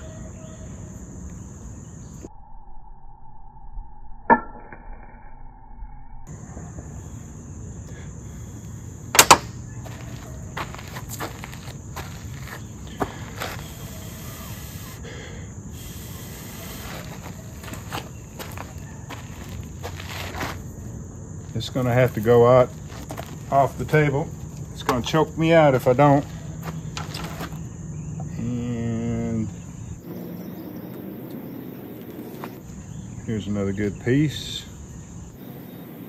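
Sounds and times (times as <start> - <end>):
insect buzzing: 0.0 - 2.3, 6.3 - 36.0.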